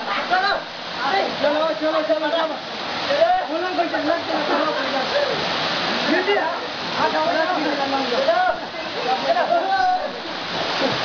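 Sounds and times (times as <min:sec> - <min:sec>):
waterfall pouring into pool: 0:00.0 - 0:11.0
men calling out: 0:07.3 - 0:10.2.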